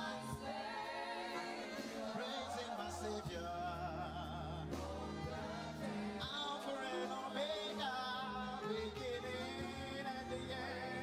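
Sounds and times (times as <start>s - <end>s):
band accompaniment: 0.0s - 11.0s
person singing gospel: 0.0s - 11.0s.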